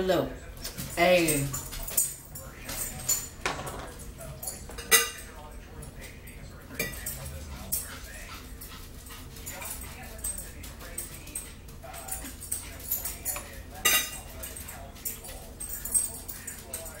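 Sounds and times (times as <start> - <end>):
cutlery clinks: 0.6 - 8.0, 9.6 - 17.0
cup knocking on wooden table: 3.4 - 3.9.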